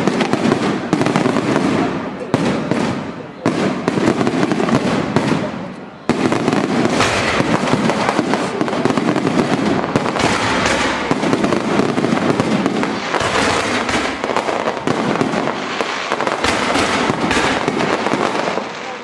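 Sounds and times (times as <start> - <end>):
fireworks bursting and crackling: 0.0 - 19.0.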